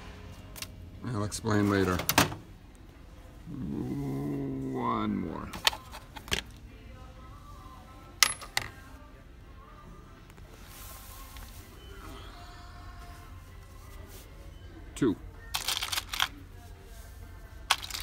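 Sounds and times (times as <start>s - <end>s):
low background hum: 0.0s - 18.0s
metal hardware clinking: 8.2s - 8.8s.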